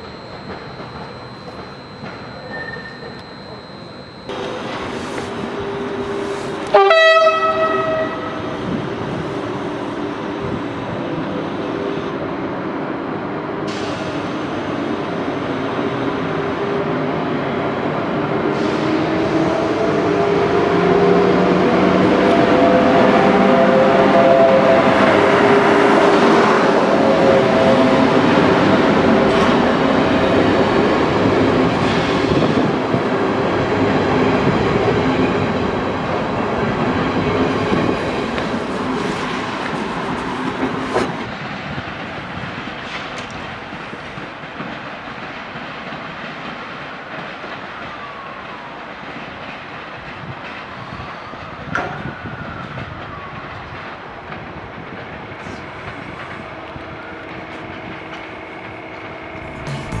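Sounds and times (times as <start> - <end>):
faint wheel squeal: 0.0 - 6.6.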